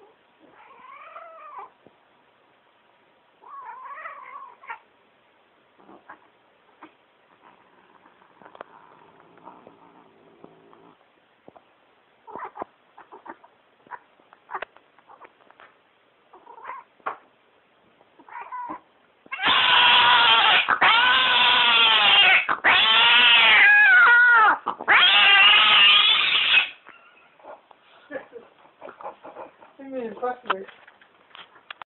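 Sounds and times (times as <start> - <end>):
cat yowling: 0.4 - 1.7, 18.2 - 27.2.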